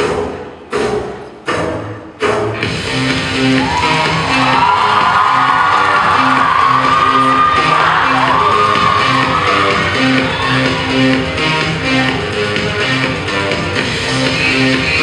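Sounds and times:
loud dance music with bass: 0:00.0 - 0:15.0.

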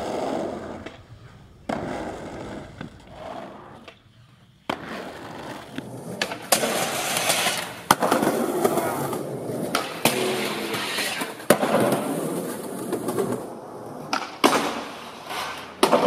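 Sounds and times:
skateboard clacks: 0:00.0 - 0:16.0
skateboard grinding metal rail: 0:00.0 - 0:16.0.

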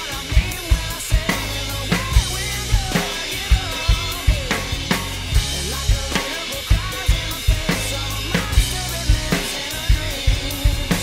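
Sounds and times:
drum kit rock beat: 0:00.0 - 0:11.0
recorded rock song: 0:00.0 - 0:11.0.

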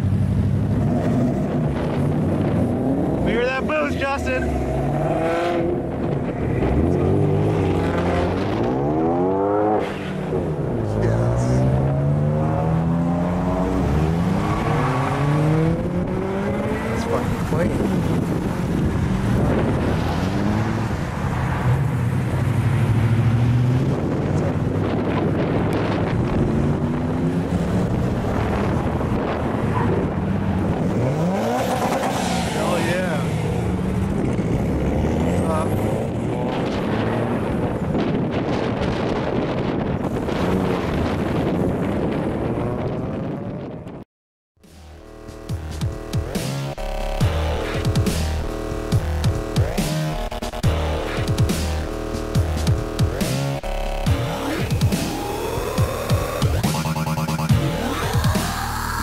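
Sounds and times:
cars driving past: 0:00.0 - 0:43.3.

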